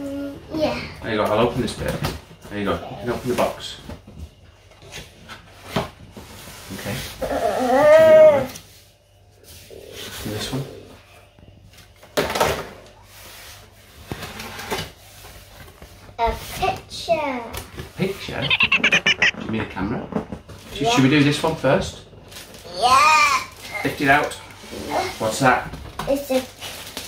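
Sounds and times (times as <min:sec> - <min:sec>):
drawn-out voiced exclamation: 0:18.2 - 0:19.5
short vocal sounds: 0:18.2 - 0:19.5.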